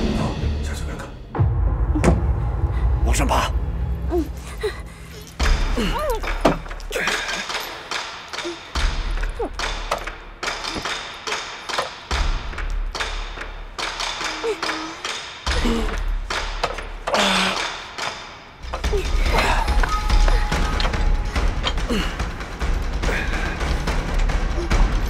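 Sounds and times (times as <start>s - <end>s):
dramatic film score: 0.0s - 25.0s
deep low rumble: 0.9s - 6.3s.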